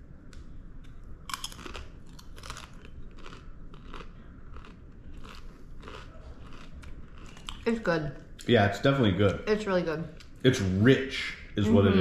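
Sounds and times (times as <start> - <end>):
chip crunching: 1.2 - 7.7.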